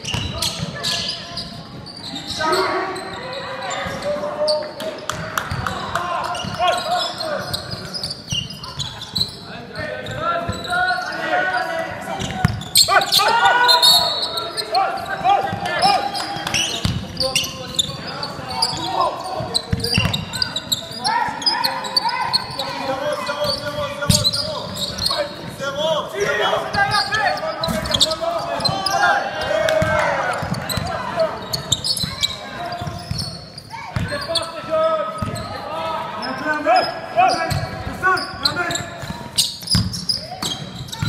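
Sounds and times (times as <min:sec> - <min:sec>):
voices calling out: 0:00.0 - 0:41.0.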